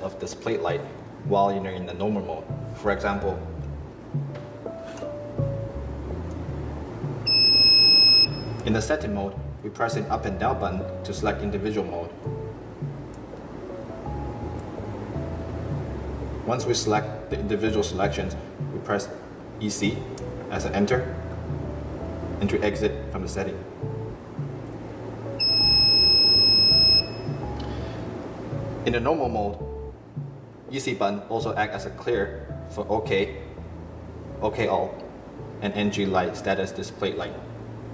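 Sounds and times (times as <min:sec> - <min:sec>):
high-pitched electronic beep: 0:07.3 - 0:08.6, 0:25.4 - 0:27.4.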